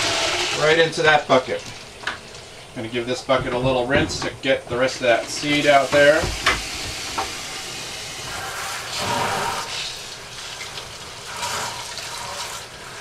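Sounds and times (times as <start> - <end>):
water running from tap: 4.8 - 13.0.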